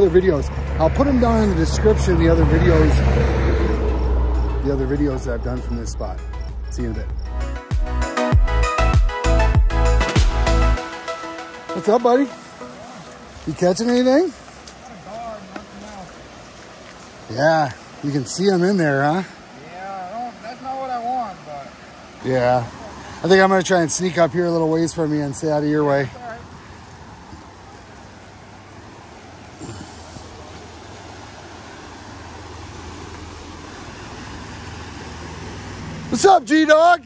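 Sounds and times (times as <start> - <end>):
fast-flowing river rushing: 9.9 - 37.0.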